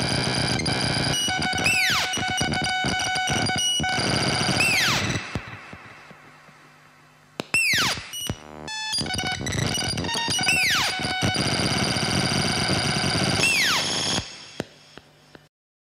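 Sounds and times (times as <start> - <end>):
falling synthesizer pitch sweeps: 3.8 - 5.4.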